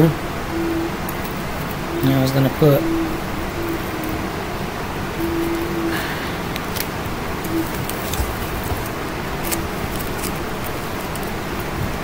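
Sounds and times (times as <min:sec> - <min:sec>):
faint hum: 0:00.0 - 0:12.0
steady background noise: 0:00.0 - 0:12.0.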